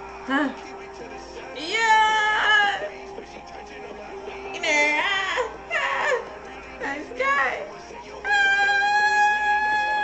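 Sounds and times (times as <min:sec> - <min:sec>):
background music: 0:00.0 - 0:10.0
high voice wailing: 0:01.6 - 0:02.9, 0:04.6 - 0:06.3, 0:08.3 - 0:10.0.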